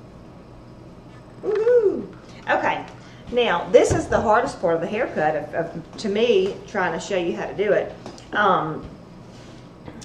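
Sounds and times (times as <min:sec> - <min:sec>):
person vocal ooh: 0:01.4 - 0:02.2.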